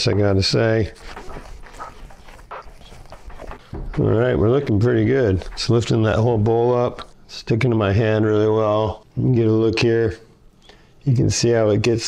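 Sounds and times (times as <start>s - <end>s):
hands squelching meat mix: 0.0s - 6.2s.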